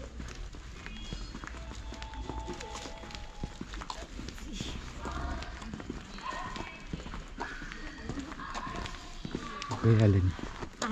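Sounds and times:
faint voices: 0.0 - 10.9
footsteps on asphalt: 0.0 - 10.9.

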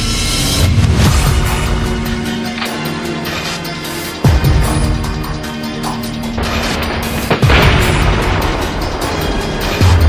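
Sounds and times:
background music: 0.0 - 10.0
loud explosion: 6.5 - 9.2.

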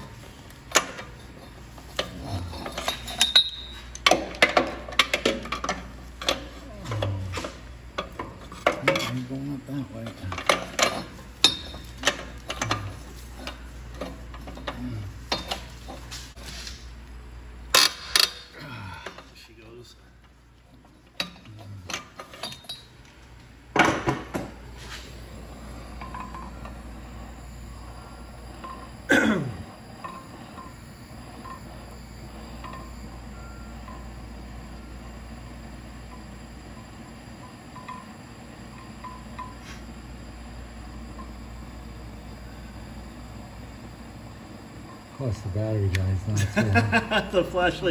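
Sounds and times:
metal tools clinking: 2.0 - 4.2
gas torch flame hissing: 23.9 - 47.9.

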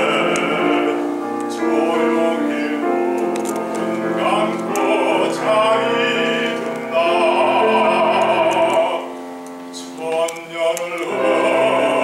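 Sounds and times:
baritone singing: 0.0 - 12.0
grand piano accompaniment: 0.0 - 12.0.

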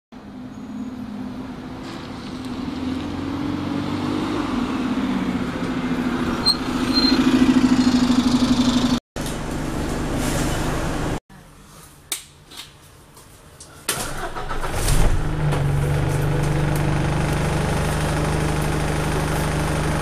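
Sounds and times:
bus diesel engine: 0.2 - 11.2, 14.1 - 20.0
high brake squeaks: 6.4 - 8.0.

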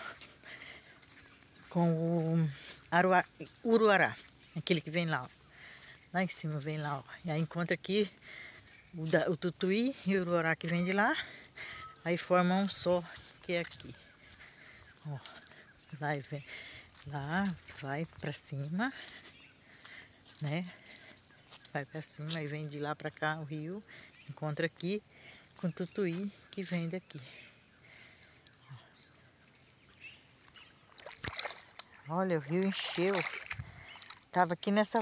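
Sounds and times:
faint outdoor background noise: 0.0 - 35.0.

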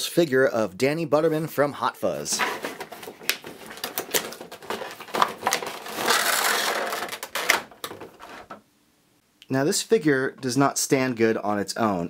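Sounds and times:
plastic crinkling: 2.3 - 8.6.

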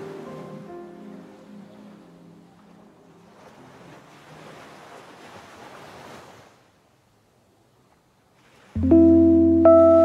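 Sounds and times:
music: 0.0 - 2.5, 8.8 - 10.0
ocean surf: 0.0 - 6.8.

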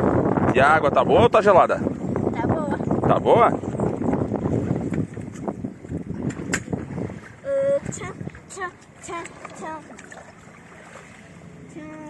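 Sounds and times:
wind buffeting microphone: 0.0 - 12.0
water sloshing and splashing: 1.2 - 12.0
sharp splash: 9.0 - 11.4.

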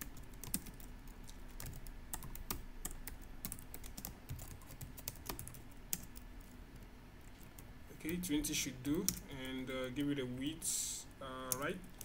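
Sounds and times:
typing on computer keyboard: 0.0 - 6.2.

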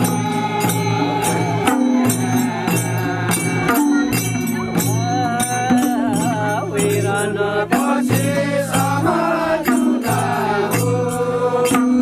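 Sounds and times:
hand drums: 0.0 - 12.0
men chanting folk song: 0.0 - 12.0.

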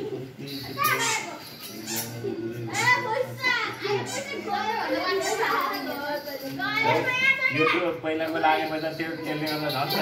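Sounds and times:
high-pitched voices chattering: 0.0 - 10.0.

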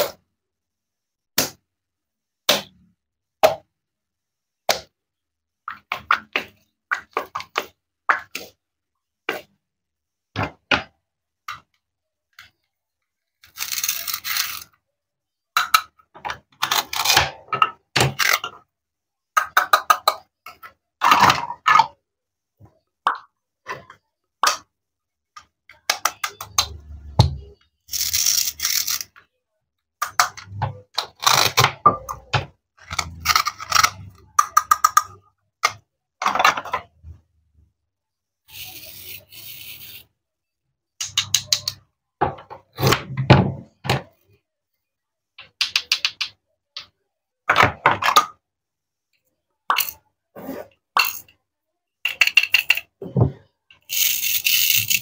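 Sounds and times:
toy pieces clicking and knocking: 13.4 - 14.8, 15.6 - 17.2, 19.4 - 21.7, 27.8 - 29.3, 30.0 - 36.9, 38.5 - 40.1, 41.0 - 41.8, 45.4 - 47.0, 49.7 - 50.0, 51.0 - 51.4, 52.0 - 53.0, 53.7 - 55.0.

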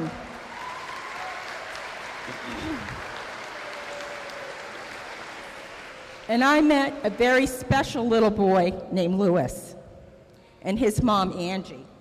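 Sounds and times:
audience clapping: 0.0 - 7.6.

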